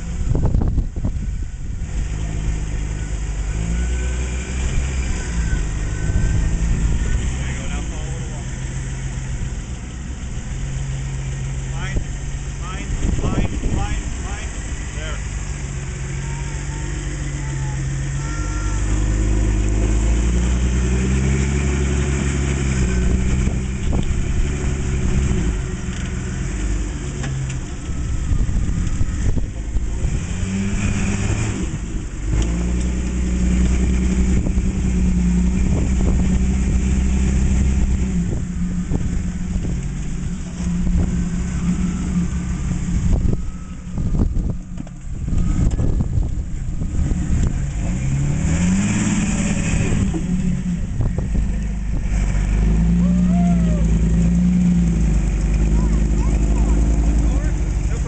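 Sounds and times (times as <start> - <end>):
buggy engine revving under load: 0.0 - 58.0.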